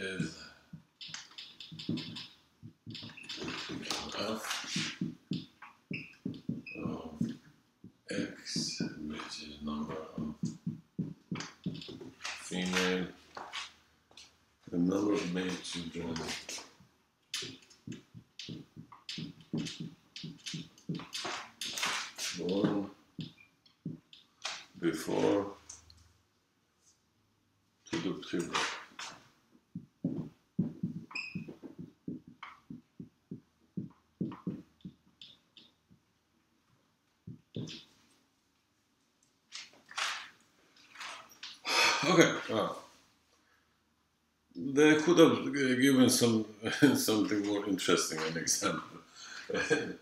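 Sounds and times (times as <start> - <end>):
man speaking: 0.0 - 0.6, 3.4 - 5.1, 6.8 - 7.4, 8.1 - 10.6, 12.2 - 13.2, 14.7 - 16.7, 22.2 - 23.0, 24.8 - 25.7, 27.9 - 28.8, 41.7 - 42.9, 44.6 - 50.0
marker squeaking on whiteboard: 1.0 - 7.4, 8.1 - 13.8, 15.2 - 25.9, 30.0 - 33.0, 33.8 - 35.8, 37.5 - 38.0, 39.6 - 41.6.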